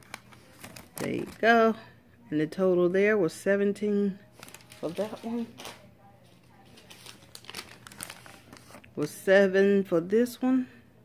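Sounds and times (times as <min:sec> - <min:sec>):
paper receipt crinkling: 0:00.0 - 0:01.6, 0:04.2 - 0:09.3.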